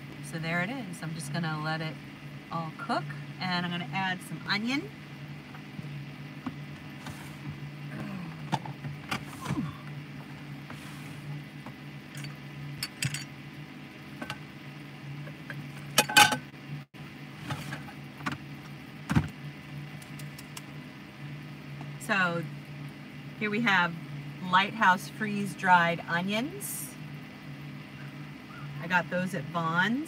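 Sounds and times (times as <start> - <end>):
steady low hum: 0.0 - 30.0.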